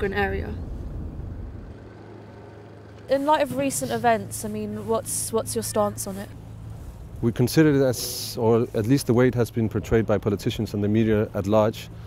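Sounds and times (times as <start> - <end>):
low hum of traffic: 0.0 - 12.0
low vehicle rumble: 0.0 - 12.0.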